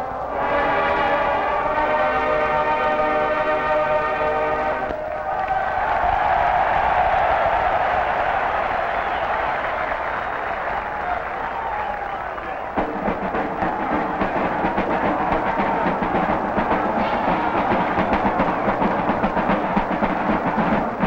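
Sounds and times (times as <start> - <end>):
marching band brass chord: 0.3 - 4.9, 12.7 - 21.0
stadium crowd applauding: 0.3 - 21.0.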